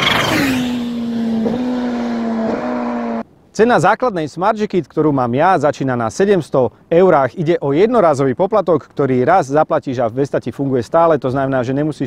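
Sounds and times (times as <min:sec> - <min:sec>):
motorcycle passing at speed: 0:00.0 - 0:03.2.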